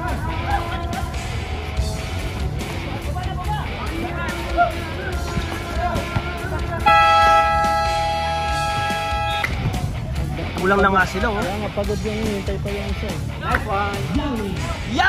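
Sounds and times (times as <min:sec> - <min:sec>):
music with heavy bass beat: 0:00.0 - 0:15.0
voices: 0:00.0 - 0:15.0
voices over music: 0:03.0 - 0:07.2
two-tone horn blast: 0:06.8 - 0:09.6.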